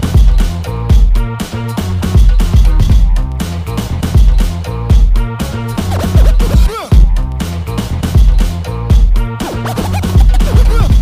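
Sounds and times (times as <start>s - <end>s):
breakbeat music: 0.0s - 11.0s
turntable scratching: 5.7s - 6.7s, 9.4s - 11.0s.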